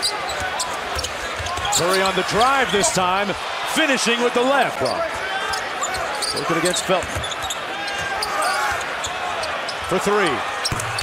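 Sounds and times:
arena crowd noise: 0.0s - 11.0s
sneaker squeaks on court: 5.5s - 7.6s.

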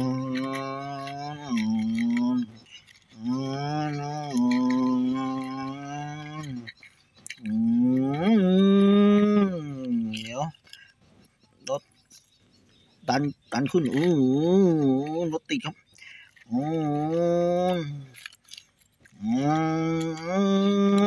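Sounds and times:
man singing long held tones: 0.0s - 10.7s, 13.1s - 15.7s, 16.3s - 21.0s.

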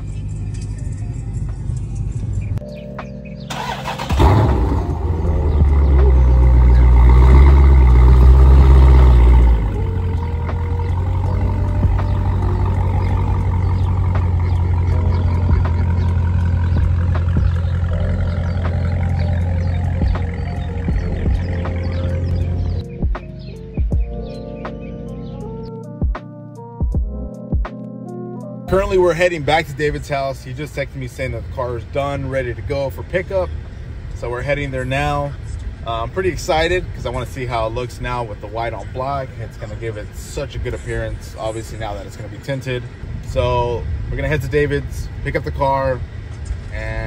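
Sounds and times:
background music: 2.6s - 30.3s
car engine running loudly: 3.5s - 22.8s.

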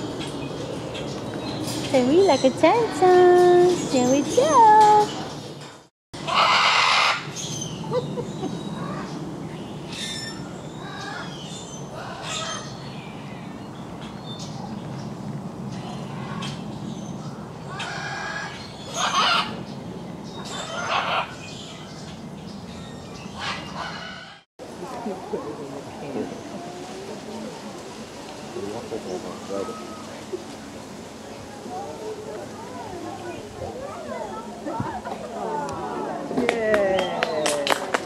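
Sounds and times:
loud animal calls: 6.2s - 7.3s, 17.7s - 19.6s, 20.5s - 21.4s
low background noise: 24.6s - 38.0s.

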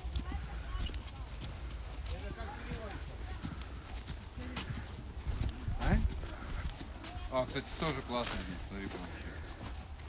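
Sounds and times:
horse hooves clip-clopping on dirt: 0.0s - 10.0s.

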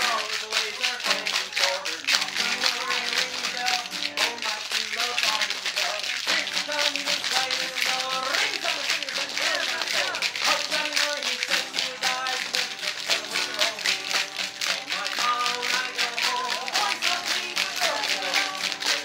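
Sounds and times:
acoustic guitar strumming: 0.0s - 19.0s
spoons clacking: 0.0s - 19.0s.

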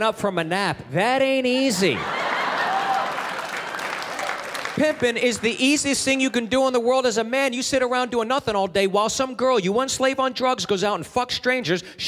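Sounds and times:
audience laughing: 1.7s - 4.6s
audience applauding: 2.0s - 5.9s.

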